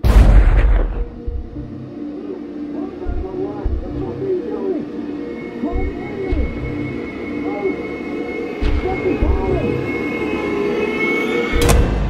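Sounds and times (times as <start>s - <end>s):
loud sharp hit: 0.0s - 1.2s
low rumble: 0.0s - 1.8s
tense film score drone: 0.0s - 12.0s.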